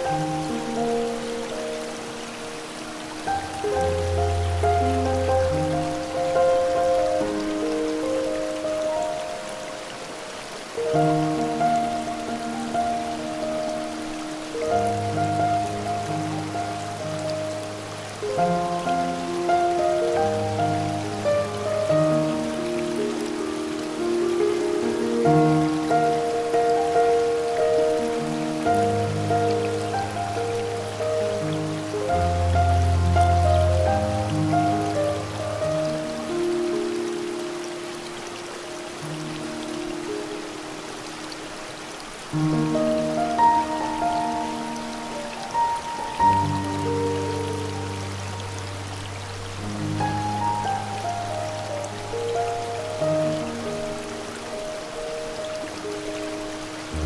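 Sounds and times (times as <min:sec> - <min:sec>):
gentle piano music: 0:00.0 - 0:57.0
waterfall noise: 0:00.0 - 0:57.0.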